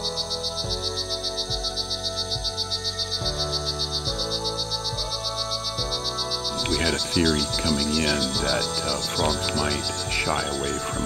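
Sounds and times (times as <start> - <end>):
background music low chords: 0.0 - 11.0
high pulsing animal trill: 0.0 - 11.0.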